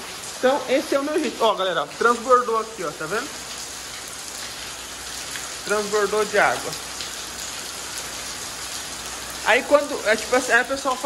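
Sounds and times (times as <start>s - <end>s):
rain on wet paving: 0.0s - 11.0s.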